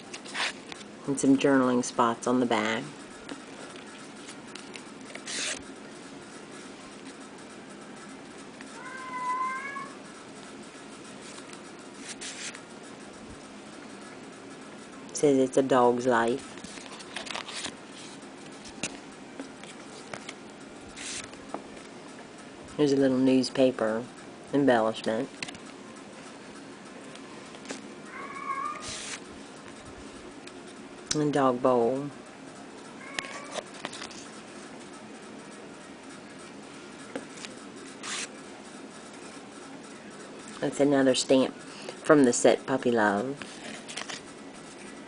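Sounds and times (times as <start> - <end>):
cat meowing: 8.8 - 10.0, 28.1 - 29.0, 33.0 - 33.6
rustling noise: 11.0 - 12.6, 16.4 - 21.9, 28.8 - 30.8.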